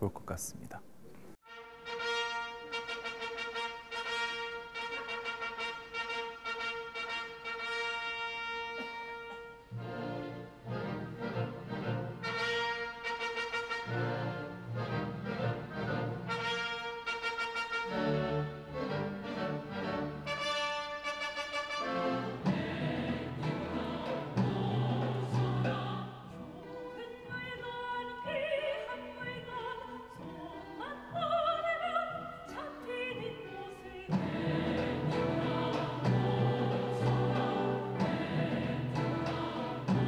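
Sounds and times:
orchestra brass playing: 1.4 - 26.0.

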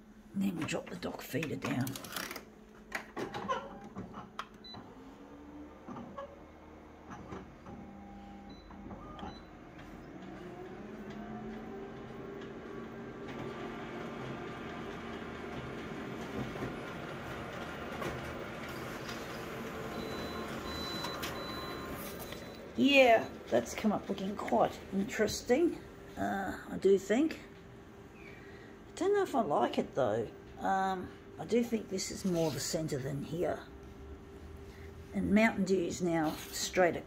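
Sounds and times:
photocopier whining and printing: 0.7 - 26.1.

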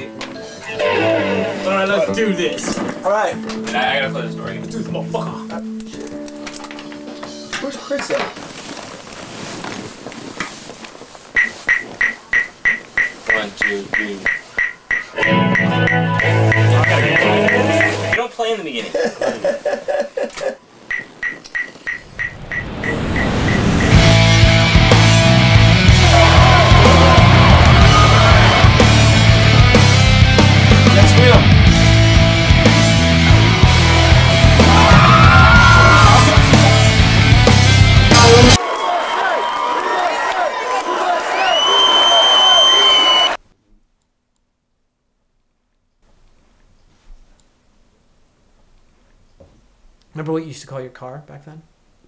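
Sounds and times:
loud rock music: 15.2 - 18.2, 23.5 - 38.6
laughter: 18.8 - 20.6
noisy rumbling: 21.9 - 38.6
crowd cheering and yelling: 23.5 - 43.4
long shrill whistle: 41.4 - 43.4.

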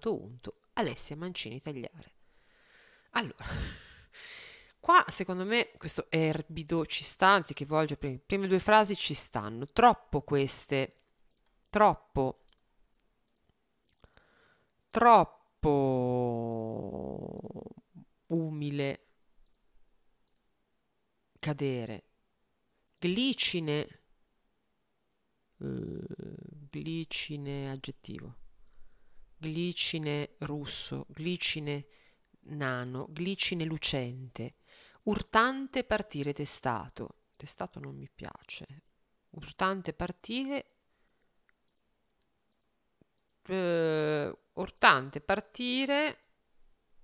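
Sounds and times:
computer mouse clicks: 12.4 - 14.2, 19.4 - 20.5, 41.4 - 43.5.

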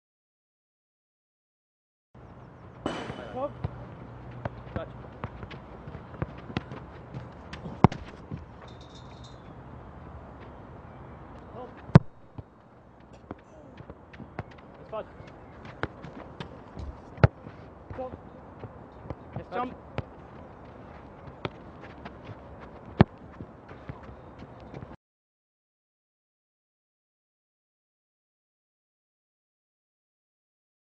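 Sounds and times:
sharp strike of a ball: 2.8 - 3.8, 12.0 - 12.3
soccer ball touches: 2.8 - 9.0, 11.7 - 25.0
running footsteps: 2.9 - 9.4, 11.8 - 25.0.

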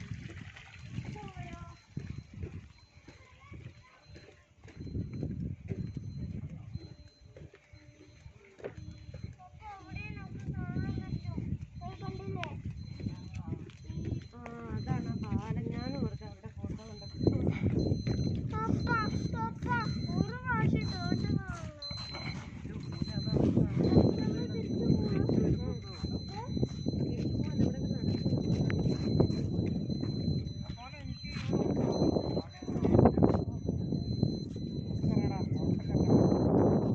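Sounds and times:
people talking: 1.1 - 5.2, 5.8 - 36.9
indistinct voices: 3.0 - 36.9
high-pitched voice calling out: 18.5 - 22.1.

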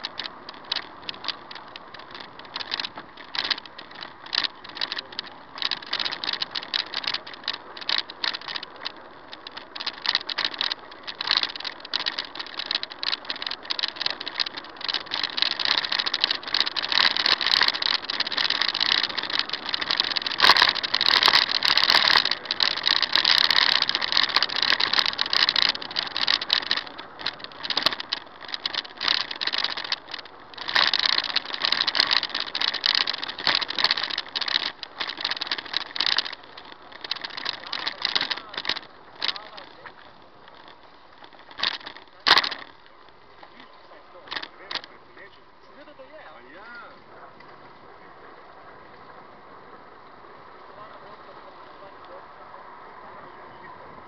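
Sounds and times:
camera rattling in its mount: 0.0 - 45.0
road noise: 0.0 - 54.0.

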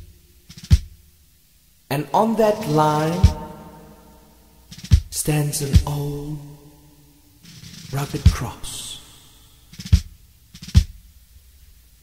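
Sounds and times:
deep bass drum hit: 3.2 - 3.7.

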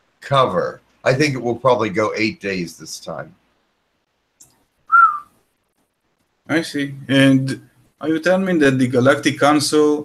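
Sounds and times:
whistle-like tone gliding down: 4.9 - 5.3.

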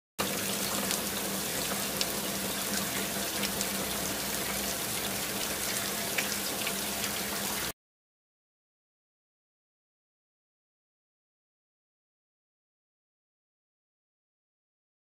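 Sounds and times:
bubbling fizzing water: 0.2 - 7.7.

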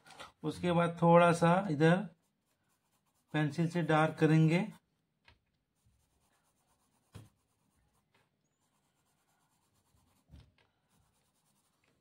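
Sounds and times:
pencil scratching on paper: 1.4 - 5.0, 5.6 - 12.0.

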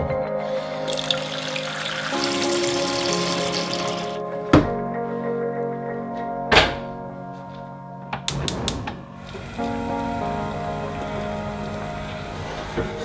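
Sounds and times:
background music: 0.0 - 13.0
water boiling hiss: 0.9 - 4.2, 9.2 - 13.0.

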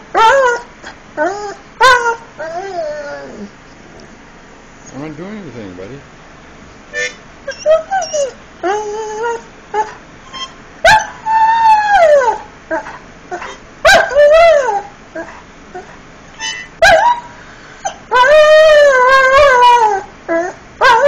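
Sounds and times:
dog whining: 0.0 - 3.6, 7.0 - 21.0
dog howling: 0.1 - 3.5, 7.5 - 17.3, 17.9 - 21.0.

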